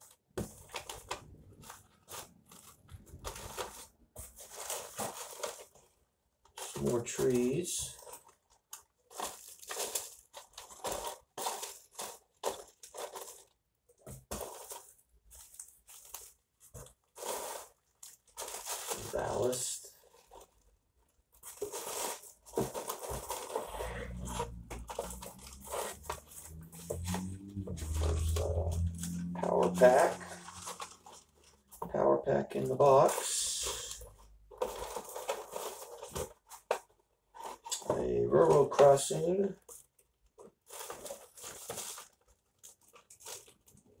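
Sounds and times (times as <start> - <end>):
plastic bags crinkling and rustling: 0.1 - 44.0.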